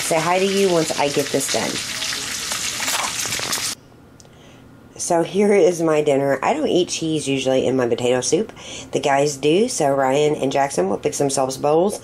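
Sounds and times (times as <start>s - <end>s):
bacon sizzling in a skillet: 0.0s - 3.8s.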